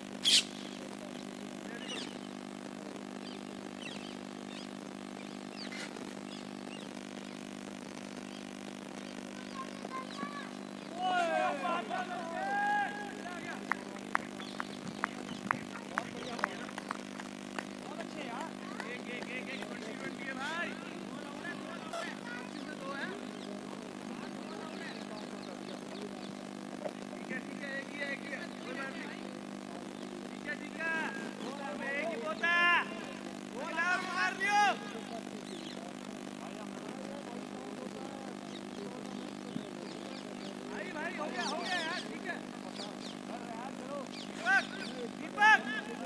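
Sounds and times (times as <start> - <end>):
steady low hum: 0.0 - 46.0
players shouting calls: 9.4 - 16.8, 17.8 - 36.8, 38.3 - 46.0
sharp hand claps: 13.6 - 19.8.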